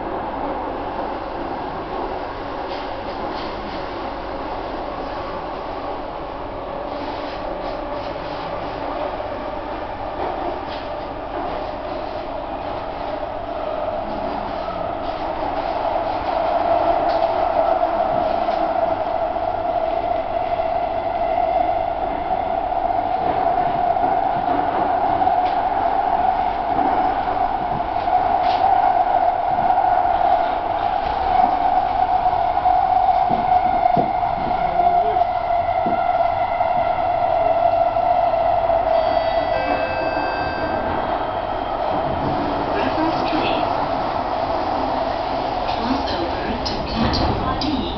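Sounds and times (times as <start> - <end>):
train rushing through tunnel: 0.0 - 47.9.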